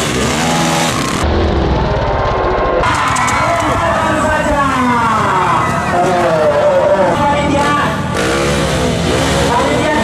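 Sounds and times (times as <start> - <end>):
motorcycle engine revving: 0.0 - 2.1, 3.6 - 10.0
people shouting: 2.8 - 7.1.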